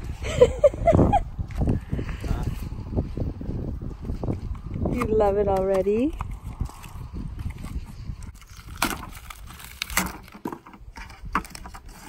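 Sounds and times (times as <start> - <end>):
cardboard rustling: 8.4 - 12.0.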